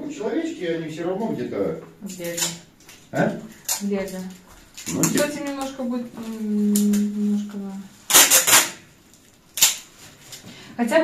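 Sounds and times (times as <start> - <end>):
plastic film crinkling: 2.1 - 10.4.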